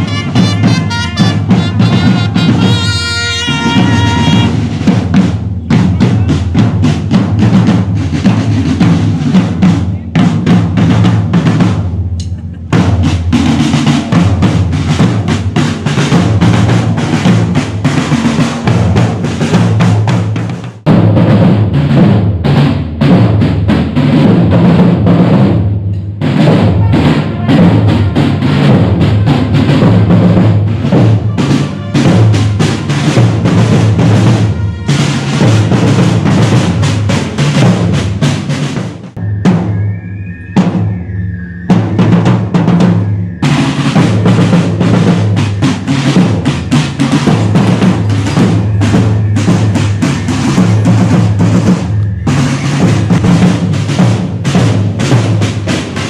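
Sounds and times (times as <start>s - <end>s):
marching side drums: 0.0s - 56.0s.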